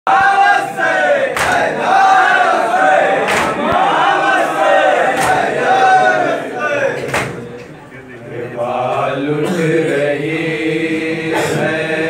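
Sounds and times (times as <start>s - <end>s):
sharp slaps: 1.3s - 1.7s, 3.2s - 3.9s, 5.1s - 5.6s, 7.0s - 7.4s
men singing a lament: 8.3s - 12.0s.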